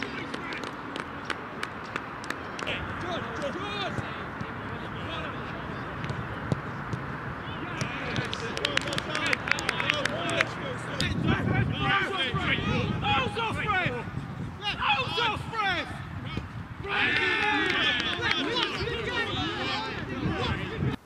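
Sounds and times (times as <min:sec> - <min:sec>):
distant players shouting: 0:02.6 - 0:21.0.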